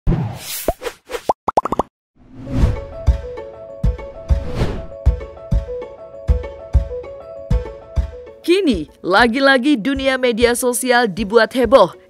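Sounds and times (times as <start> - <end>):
whooshes: 2.2 - 3.0, 4.1 - 5.0.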